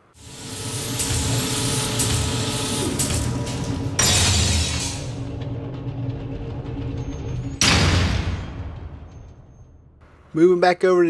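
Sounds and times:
low mechanical rumble: 2.3s - 7.7s.

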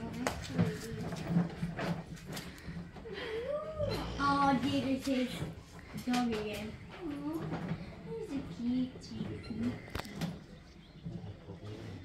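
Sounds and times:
low background hum: 0.0s - 12.0s
indistinct voices: 3.0s - 12.0s.

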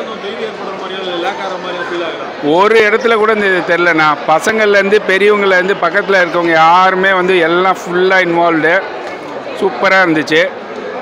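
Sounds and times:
man talking into microphone: 0.0s - 8.9s, 9.6s - 10.6s.

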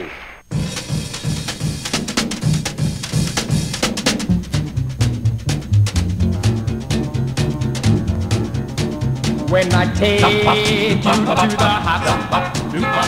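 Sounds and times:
drum kit playing fast beat: 0.4s - 13.0s
bass line: 4.2s - 13.0s.

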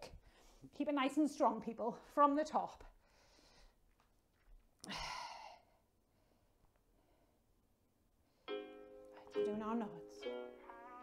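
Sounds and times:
woman sighing: 4.8s - 5.6s.

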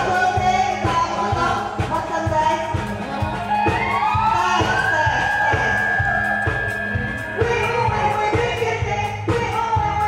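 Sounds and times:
live band music: 0.0s - 10.0s
crowd cheering: 2.7s - 8.7s.

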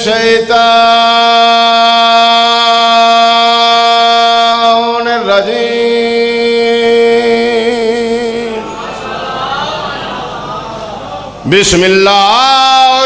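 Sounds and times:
man chanting over loudspeaker: 0.0s - 13.0s.

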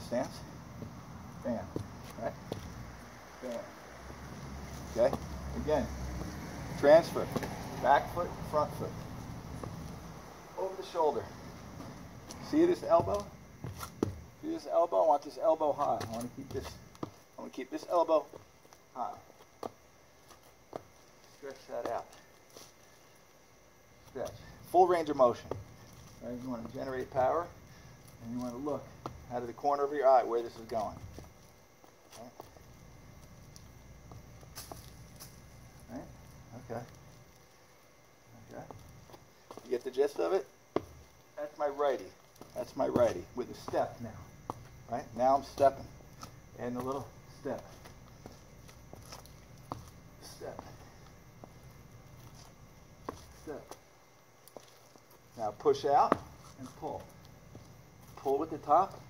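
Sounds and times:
faint footsteps: 0.0s - 59.0s
faint outdoor background: 0.0s - 59.0s.

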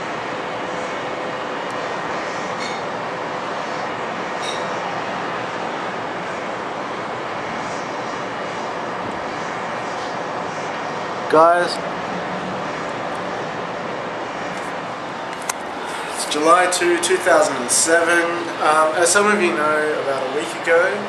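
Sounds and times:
city background roar: 0.0s - 21.0s.

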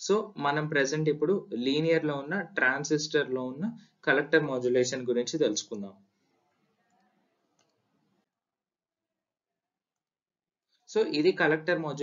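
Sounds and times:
man speaking: 0.0s - 6.0s, 10.9s - 12.0s.

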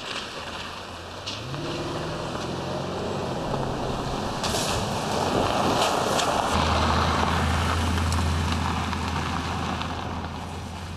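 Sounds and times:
car engine and road noise: 0.0s - 10.9s
low drone: 1.4s - 8.5s.

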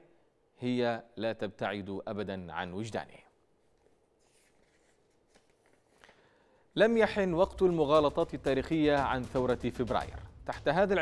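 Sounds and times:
man narrating: 0.6s - 3.2s, 6.8s - 11.0s.

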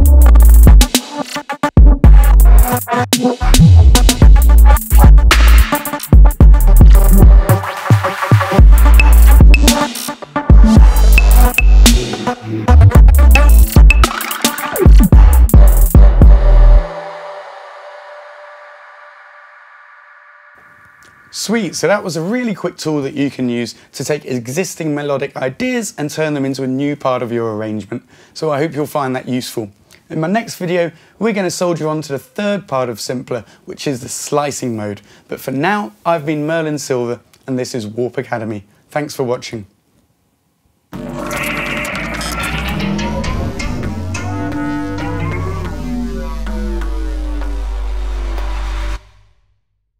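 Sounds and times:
drum machine beat: 0.0s - 16.5s
music with deep bass: 0.0s - 17.8s, 41.0s - 49.3s
synth stabs: 1.6s - 21.7s, 40.9s - 49.4s.

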